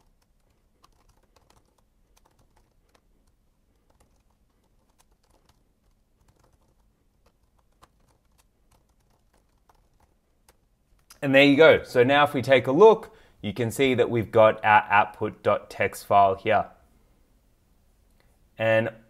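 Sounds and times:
faint keyboard typing: 0.0 - 11.2.

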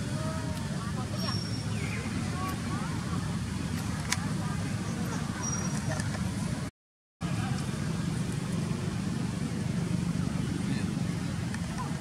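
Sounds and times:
murmur of distant voices: 0.0 - 12.0
vehicle traffic hum: 0.0 - 12.0.

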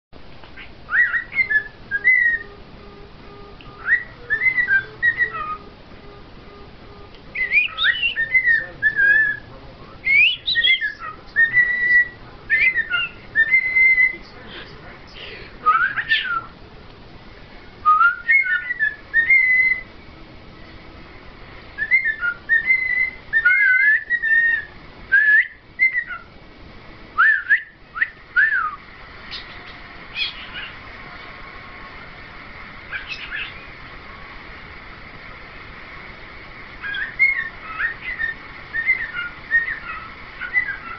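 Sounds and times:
cockatiel whistling: 0.6 - 5.7, 7.3 - 14.2, 15.7 - 16.5, 17.8 - 19.9, 21.8 - 26.3, 27.2 - 30.8, 32.9 - 33.7, 36.8 - 40.9.

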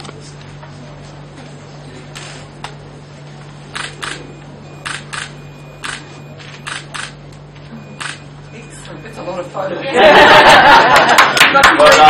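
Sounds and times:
camera shutters clicking: 3.8 - 4.2, 4.8 - 7.2, 8.0 - 8.2.

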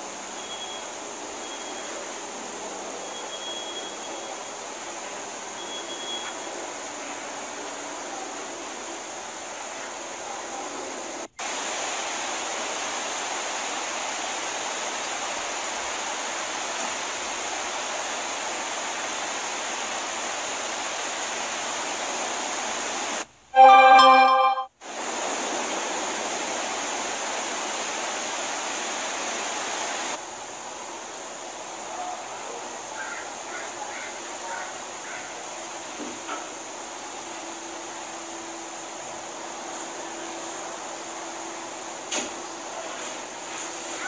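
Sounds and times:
steady background hiss: 0.0 - 44.0.

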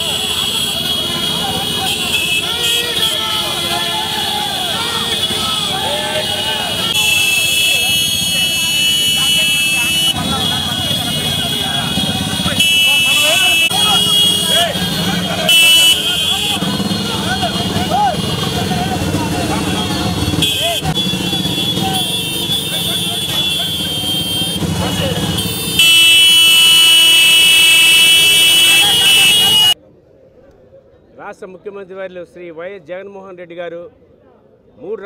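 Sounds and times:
long loud horn blast: 0.0 - 18.8, 20.0 - 29.8
horns honking: 0.0 - 29.8
men shouting: 0.9 - 20.9, 21.7 - 29.8
motorcycle engines running: 4.2 - 26.3.

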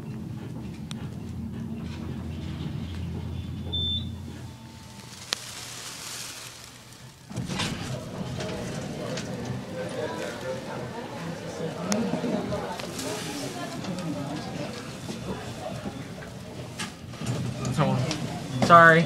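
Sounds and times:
elevator hum: 0.0 - 19.0
short high beep: 3.7 - 4.7
background voices: 4.2 - 18.3.

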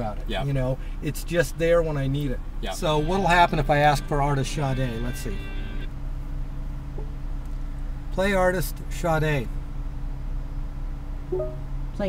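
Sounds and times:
low hum inside car cabin: 0.0 - 12.0
short pitched blip: 11.3 - 11.7.

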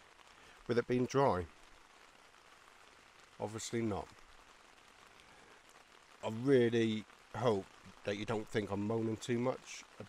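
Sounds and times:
light rain on tent: 0.0 - 10.0.

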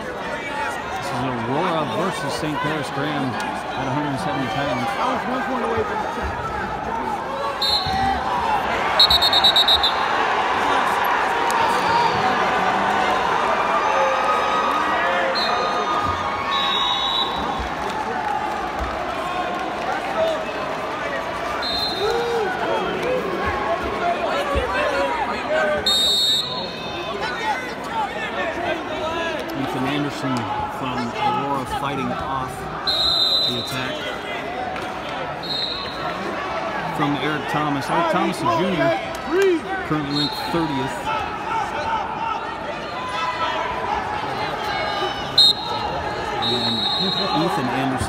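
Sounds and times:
crowd murmur: 0.0 - 48.0
referee whistle blasts: 7.6 - 8.1, 9.0 - 10.1, 15.3 - 17.6, 21.6 - 22.2, 25.8 - 27.0, 32.8 - 34.0, 35.4 - 36.1, 40.0 - 41.0, 45.4 - 47.6.

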